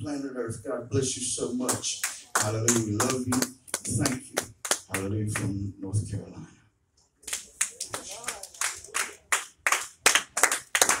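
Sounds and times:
hand clapping: 0:01.7 - 0:05.6, 0:07.2 - 0:11.0.

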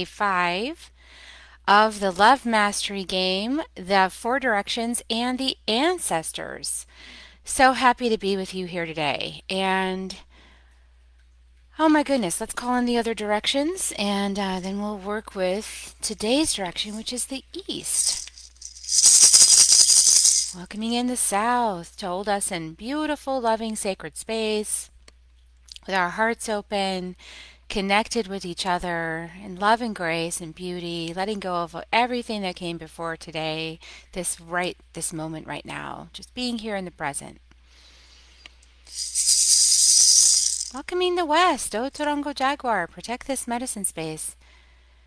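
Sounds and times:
hand rattle shaken fast: 0:17.8 - 0:20.6, 0:38.9 - 0:40.8.

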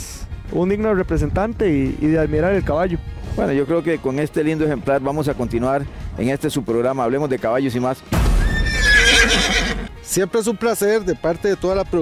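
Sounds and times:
horse neighing: 0:08.4 - 0:10.0.

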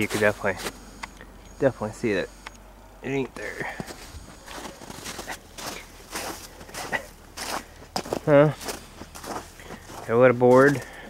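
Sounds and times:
footsteps on snow: 0:00.0 - 0:02.4, 0:03.1 - 0:11.0.

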